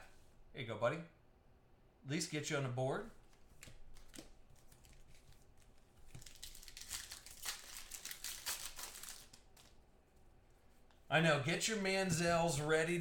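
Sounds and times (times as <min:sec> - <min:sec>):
foil wrapper crinkling: 0:04.0 - 0:09.8.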